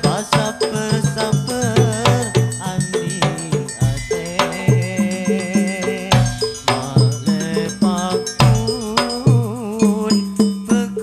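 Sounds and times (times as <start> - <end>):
drum and percussion beat: 0.0 - 11.0
wavering melodic line: 0.0 - 11.0.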